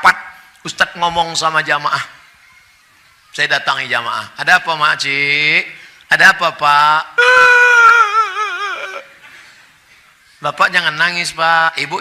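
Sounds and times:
man's falsetto wailing cry: 7.2 - 9.2.

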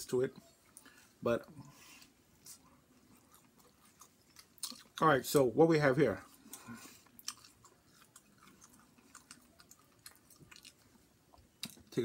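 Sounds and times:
person chewing food: 0.6 - 5.0, 6.2 - 12.0.

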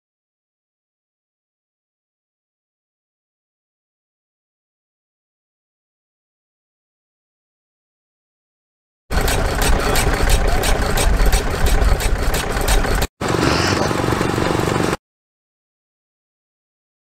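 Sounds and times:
machine running: 9.1 - 15.0
stationary engine running: 9.1 - 15.0.

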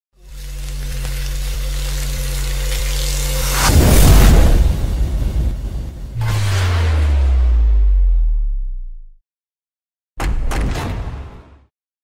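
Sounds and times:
rising whoosh: 3.4 - 9.2
deep boom: 3.6 - 9.2.

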